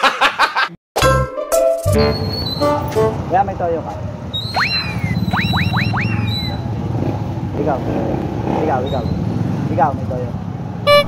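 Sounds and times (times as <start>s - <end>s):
vehicle engine rumbling: 2.0s - 11.0s
whistle-like rising sweeps: 4.4s - 6.7s.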